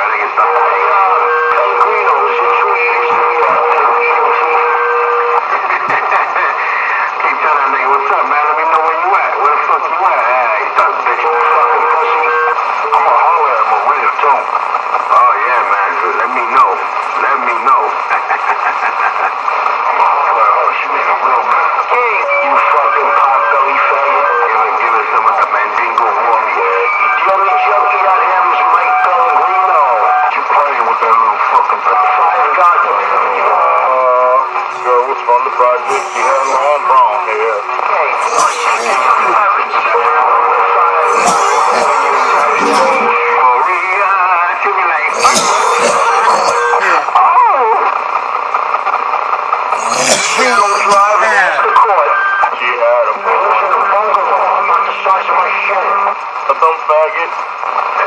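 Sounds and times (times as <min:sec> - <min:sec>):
voices talking over radio: 0:00.0 - 0:48.1, 0:49.7 - 0:58.0.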